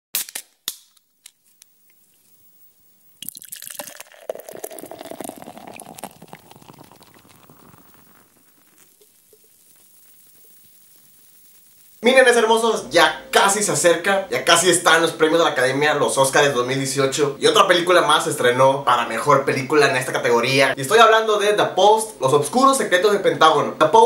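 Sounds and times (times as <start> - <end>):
liquid splash and pour: 3.2 - 12.0
sharp liquid drips: 3.2 - 12.0.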